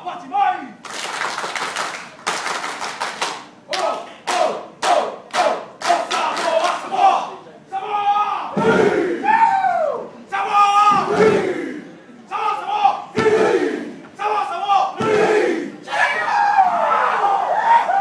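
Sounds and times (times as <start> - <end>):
group chanting and shouting: 3.7 - 18.0.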